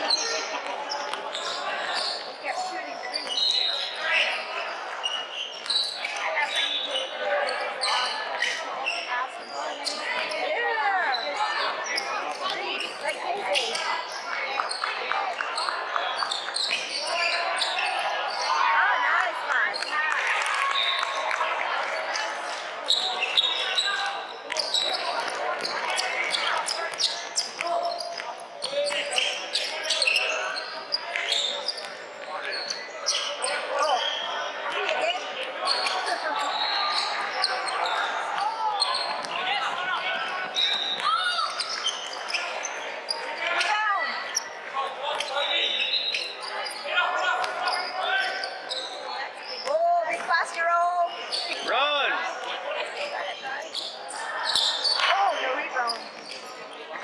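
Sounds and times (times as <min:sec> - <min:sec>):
voices calling out echoing: 0:00.0 - 0:57.0.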